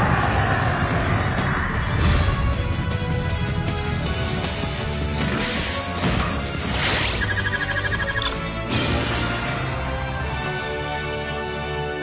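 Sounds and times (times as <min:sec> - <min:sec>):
dramatic soundtrack music: 0:00.0 - 0:12.0.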